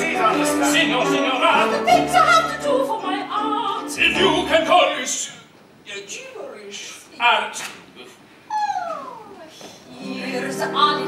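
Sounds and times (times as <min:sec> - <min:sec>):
woman wailing: 0:08.5 - 0:09.4.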